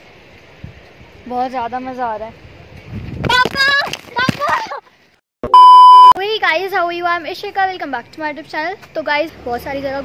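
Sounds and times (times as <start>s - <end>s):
electronic bleep: 5.4s - 6.2s.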